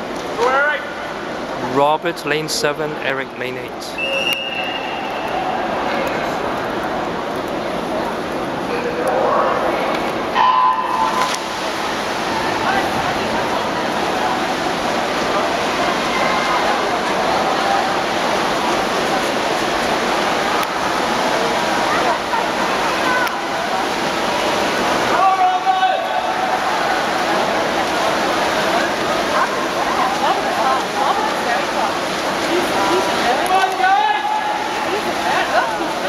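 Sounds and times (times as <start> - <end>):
swimmers splashing: 0.0 - 36.0
spectators shouting: 25.0 - 27.4.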